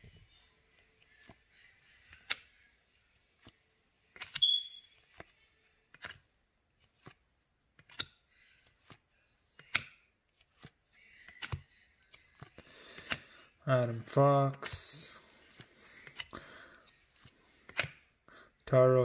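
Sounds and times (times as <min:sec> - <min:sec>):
cards flicking off a stack: 0:09.6 - 0:10.0, 0:12.4 - 0:13.3, 0:17.2 - 0:18.0.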